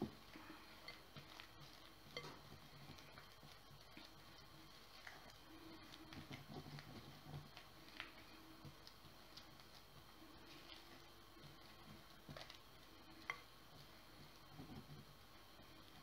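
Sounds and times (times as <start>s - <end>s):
spatula stirring dough in glass bowl: 0.0s - 16.0s.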